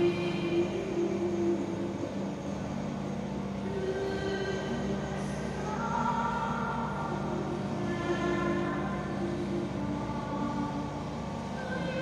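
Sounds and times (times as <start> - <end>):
low steady drone: 0.0 - 12.0
slow music of held chords: 0.0 - 12.0.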